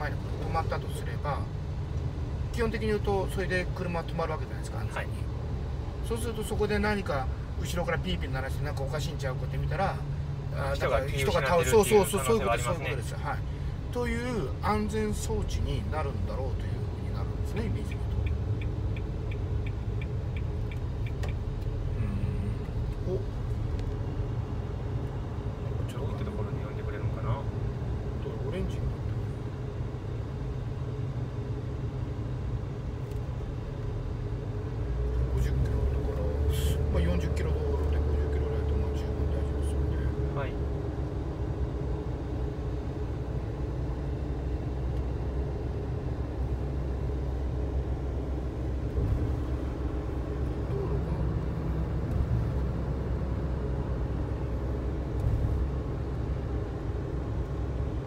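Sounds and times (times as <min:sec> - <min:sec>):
road and tyre rumble in car: 0:00.0 - 0:58.0.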